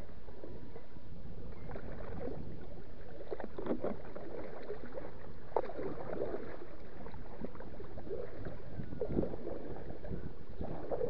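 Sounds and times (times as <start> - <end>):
water lapping against kayak: 0.0 - 11.0.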